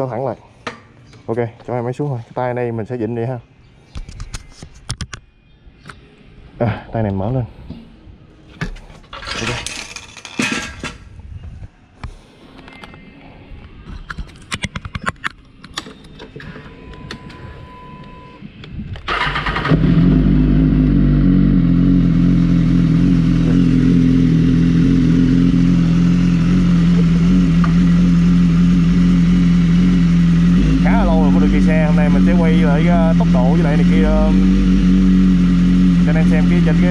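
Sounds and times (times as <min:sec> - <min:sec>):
motorcycle engine starting and idling: 0:19.0 - 0:36.9.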